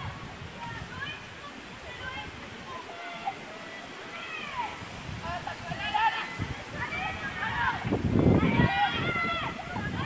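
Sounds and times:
distant children's voices: 0.0s - 10.0s.

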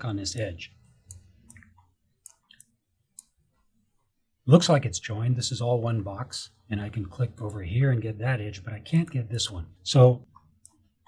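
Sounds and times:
computer mouse clicking: 0.3s - 4.1s, 10.2s - 10.9s.

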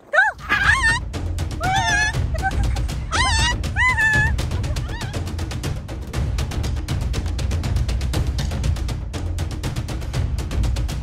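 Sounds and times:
background music with drum beat: 0.7s - 11.0s.

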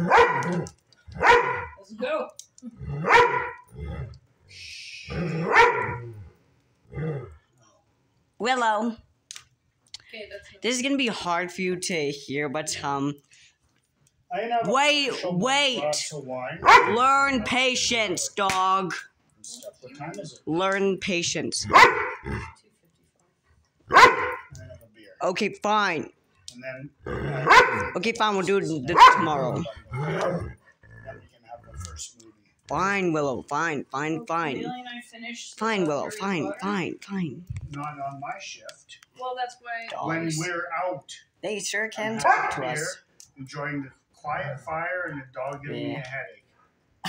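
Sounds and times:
dog barking: 0.0s - 1.8s, 3.0s - 3.7s, 5.3s - 6.1s, 16.6s - 17.1s, 21.6s - 22.5s, 23.9s - 24.6s, 27.4s - 28.0s, 28.9s - 29.7s, 42.2s - 42.8s
dog low grumble: 3.7s - 4.2s, 29.0s - 32.1s.

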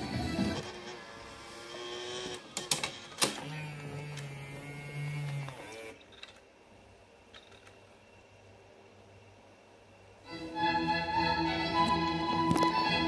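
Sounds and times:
faceplate motor hum: 0.0s - 8.0s.

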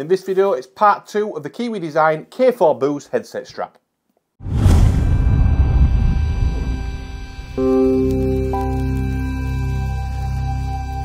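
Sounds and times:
deep rumbling whoosh: 4.4s - 8.1s
faint sustained tone: 4.7s - 11.0s.

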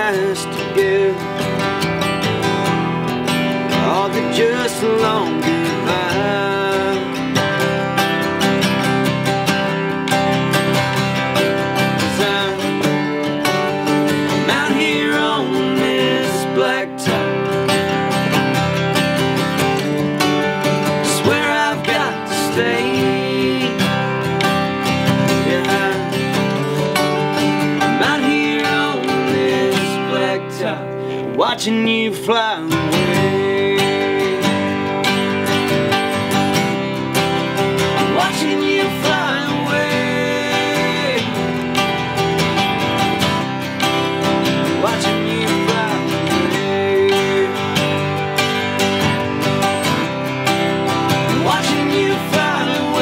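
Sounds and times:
acoustic guitar picking lead: 0.0s - 53.0s
acoustic guitar strumming chords: 0.0s - 53.0s.

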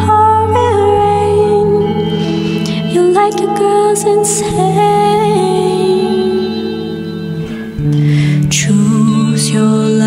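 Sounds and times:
electric guitar chords ringing: 0.0s - 10.0s.

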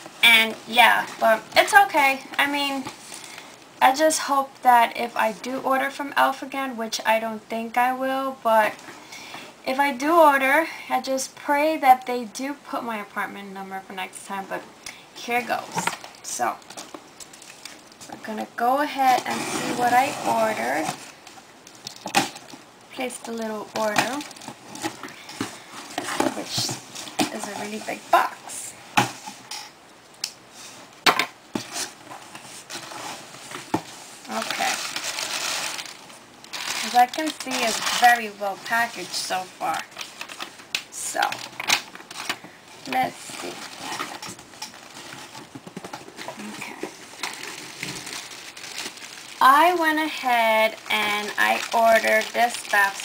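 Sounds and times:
paper packing crinkling: 31.6s - 53.0s.

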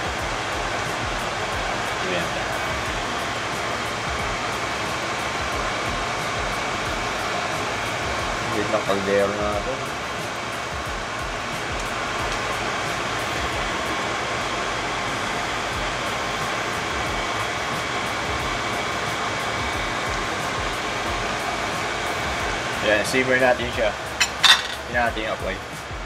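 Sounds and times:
faint background music: 0.0s - 26.0s.

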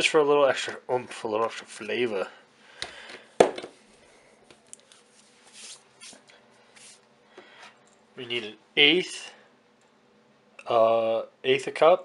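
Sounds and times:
faint rustles and scrapes: 3.8s - 7.7s.

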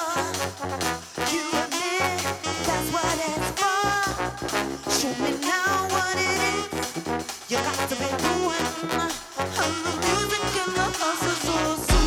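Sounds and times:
brass band playing: 0.0s - 12.0s
drum kit: 0.0s - 12.0s.

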